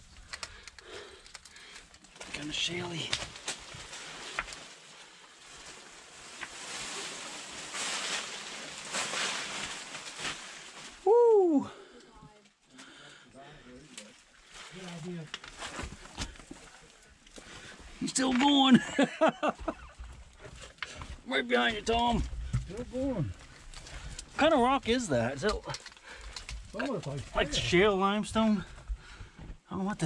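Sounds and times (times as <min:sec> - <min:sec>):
people crawling over loose rock: 0:00.0 - 0:11.1, 0:14.1 - 0:29.7.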